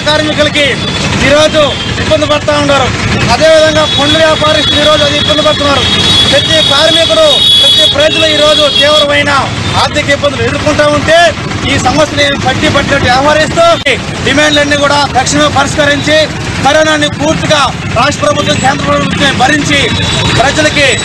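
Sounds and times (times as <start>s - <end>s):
man speaking into microphone: 0.0s - 21.0s
road traffic: 0.0s - 21.0s.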